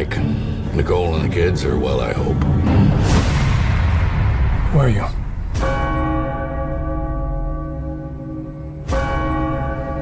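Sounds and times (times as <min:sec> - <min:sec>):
large bell tolling: 0:05.2 - 0:10.0.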